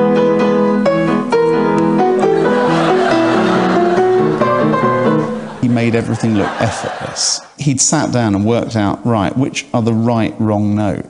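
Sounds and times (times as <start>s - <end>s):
off-key upright piano: 0.0s - 5.9s
man talking: 5.6s - 11.0s.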